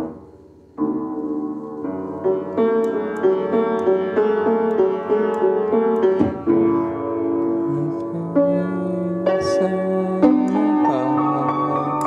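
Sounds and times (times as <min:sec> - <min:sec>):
out-of-tune upright piano: 0:00.0 - 0:12.0.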